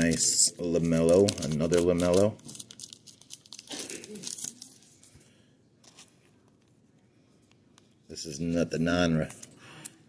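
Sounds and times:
plastic card sleeve crinkling: 0:00.0 - 0:05.1.

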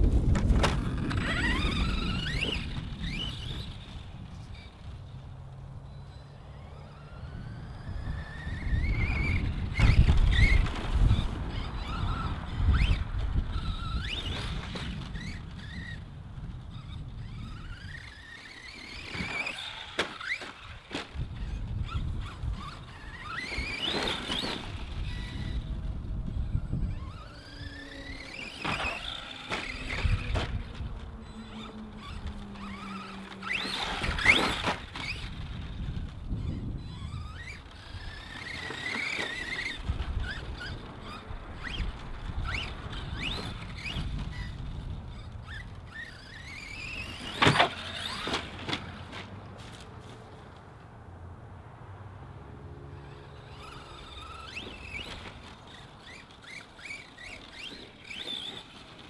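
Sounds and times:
wind on microphone: 0:00.0 - 0:04.9, 0:07.3 - 0:19.2, 0:21.1 - 0:48.3
electric motor whining: 0:00.0 - 0:49.1, 0:52.9 - 0:59.0.

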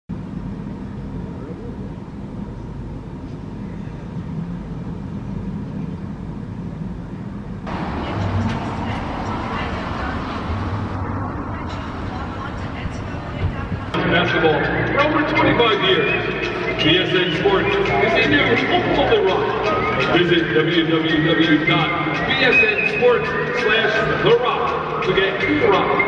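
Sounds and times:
low rumble of traffic: 0:00.1 - 0:22.4
people's voices: 0:07.7 - 0:26.0.

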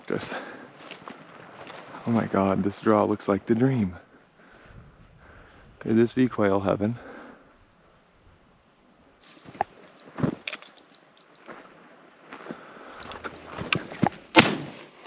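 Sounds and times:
brush rustling underfoot: 0:00.0 - 0:03.8, 0:09.2 - 0:14.8
shotgun shots: 0:14.3 - 0:14.9.

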